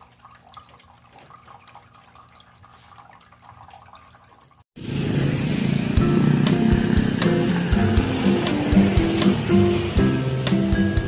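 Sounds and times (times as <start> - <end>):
tabletop fountain trickling: 0.0 - 4.7
loud music with steady beat: 5.9 - 11.0.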